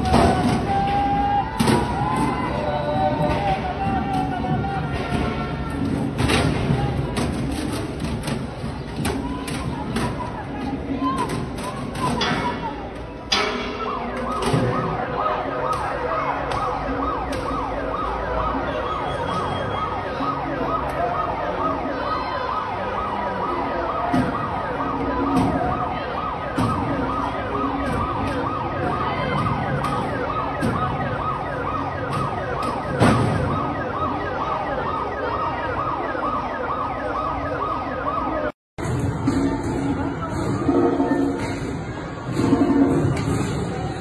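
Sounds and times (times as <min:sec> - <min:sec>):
emergency vehicle sirens: 0:00.0 - 0:44.0.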